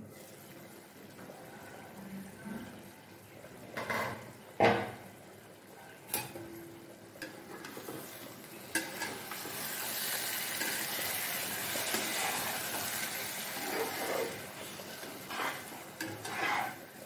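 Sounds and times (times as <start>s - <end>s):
thick gravy sizzling: 0.0s - 17.0s.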